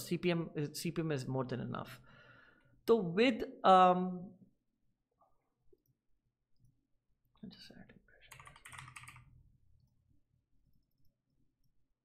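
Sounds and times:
keyboard typing: 0:08.3 - 0:10.0.

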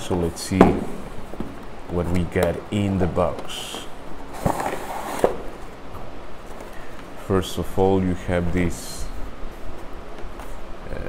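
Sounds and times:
cardboard scraping and rustling: 0:03.2 - 0:05.8.

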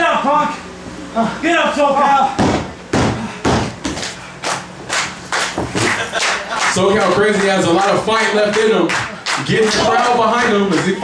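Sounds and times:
sharp slaps and thuds: 0:02.4 - 0:04.1.

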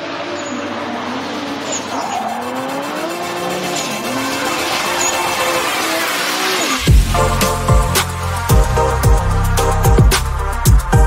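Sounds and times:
car engine accelerating hard: 0:00.0 - 0:10.1.

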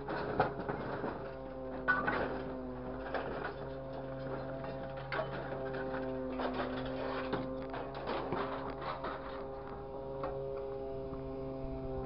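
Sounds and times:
machine engine and hydraulics humming: 0:00.0 - 0:12.0.

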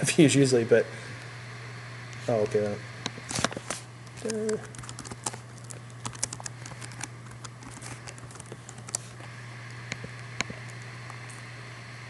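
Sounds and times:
steady low hum: 0:00.0 - 0:12.0
computer keyboard typing: 0:04.2 - 0:09.0.

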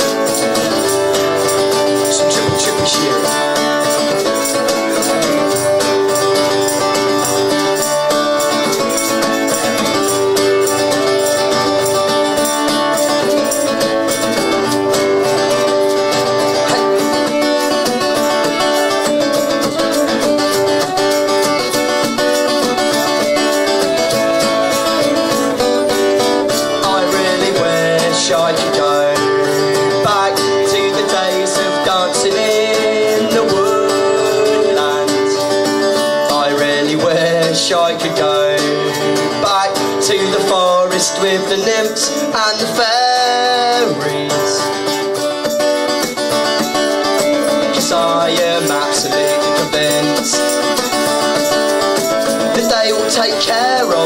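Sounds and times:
strummed string instruments: 0:00.0 - 0:54.0.

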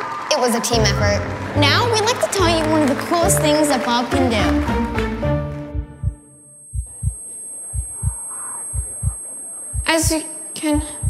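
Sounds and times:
heartbeat sound effect: 0:05.7 - 0:11.0
faint hum: 0:06.0 - 0:11.0.

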